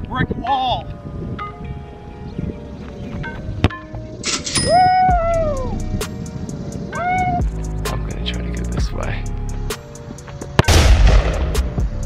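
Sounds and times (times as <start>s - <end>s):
background music: 0.0s - 12.0s
hissing explosion-like burst: 10.7s - 11.7s.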